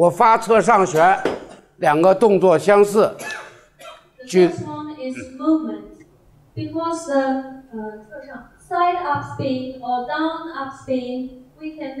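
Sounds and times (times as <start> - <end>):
person talking: 4.2 - 5.9.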